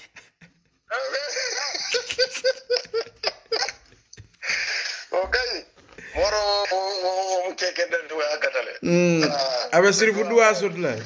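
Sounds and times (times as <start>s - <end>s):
man laughing heartily: 0.0s - 6.8s.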